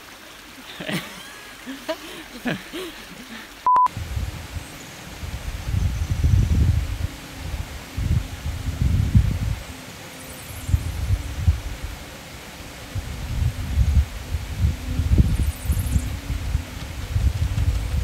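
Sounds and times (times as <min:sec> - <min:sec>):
short electronic beep: 0:03.7 - 0:03.9
wind buffeting microphone: 0:03.9 - 0:09.7, 0:10.6 - 0:18.0.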